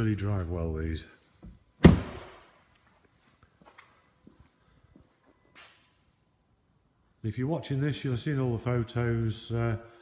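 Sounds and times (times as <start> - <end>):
truck door shutting with a thud: 1.8 - 2.4.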